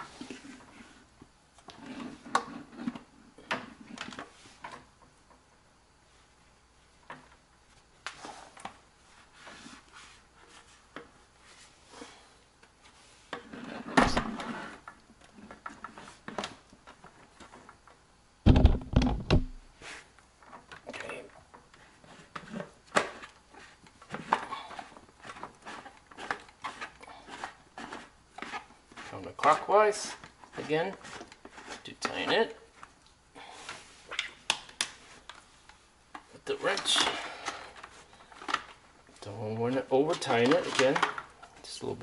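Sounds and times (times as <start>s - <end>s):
loud thumps: 18.4s - 19.6s.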